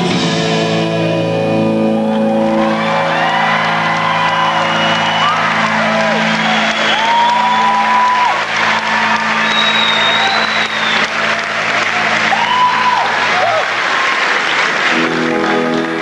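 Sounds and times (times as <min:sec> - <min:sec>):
audience applauding and cheering: 0:01.5 - 0:16.0
whistles: 0:02.9 - 0:11.3.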